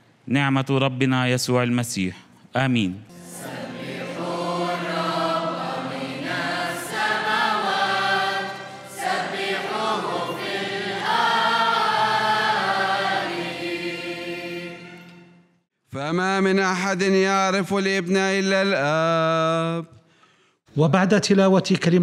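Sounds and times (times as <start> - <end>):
choir singing a hymn: 3.1 - 15.4
keyboard accompaniment: 3.1 - 15.6.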